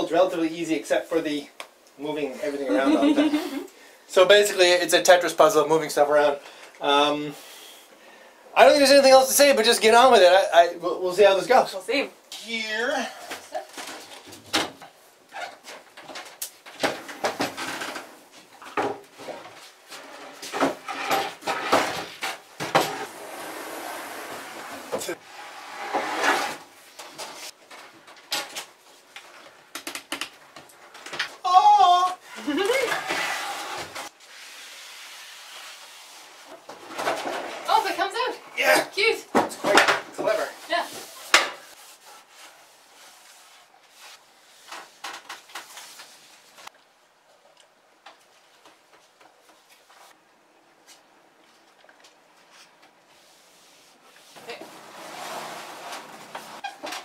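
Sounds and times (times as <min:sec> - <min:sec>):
wicker furniture clattering: 0:54.4 - 0:57.0.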